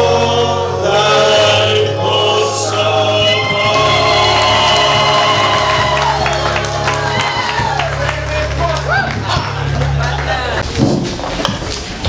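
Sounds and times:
men's choir singing a hymn: 0:00.0 - 0:07.2.

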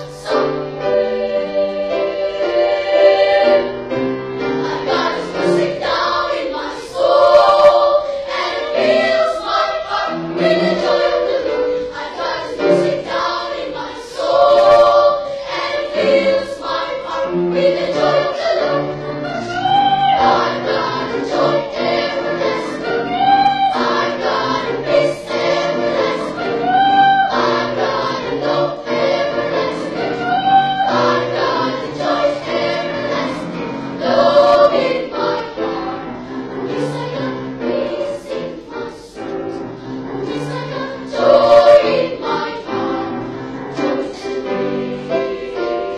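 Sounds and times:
children's choir singing: 0:00.0 - 0:45.9.

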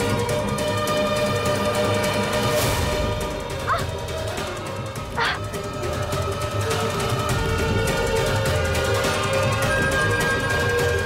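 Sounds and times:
dramatic sustained music: 0:00.0 - 0:11.0.

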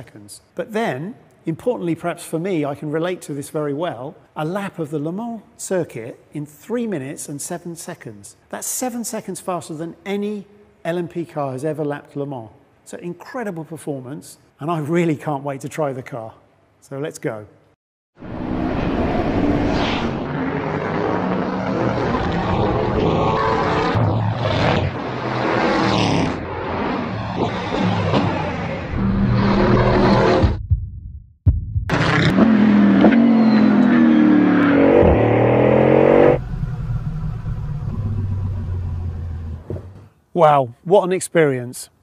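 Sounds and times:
car engine revving: 0:18.2 - 0:30.5, 0:31.9 - 0:40.0.

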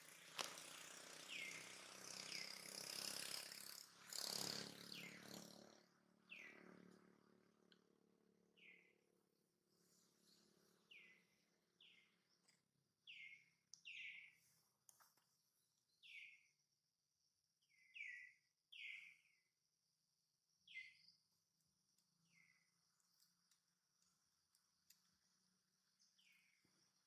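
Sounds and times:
bird chirping: 0:01.3 - 0:02.9, 0:10.3 - 0:14.5, 0:15.9 - 0:16.6, 0:17.6 - 0:19.5, 0:20.6 - 0:23.3, 0:25.8 - 0:27.0.

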